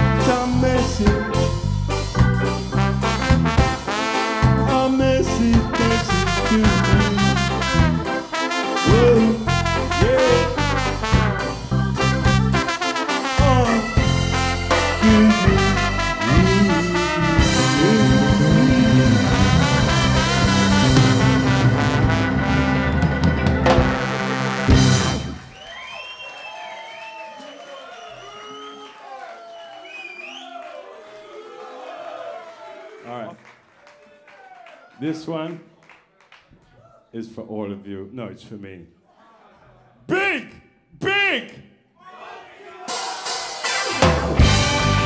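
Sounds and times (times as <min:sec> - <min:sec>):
ska band with brass playing: 0:00.0 - 0:25.8, 0:42.8 - 0:45.0
audience cheering: 0:16.4 - 0:37.1, 0:42.0 - 0:45.0
high whistles: 0:25.4 - 0:30.7.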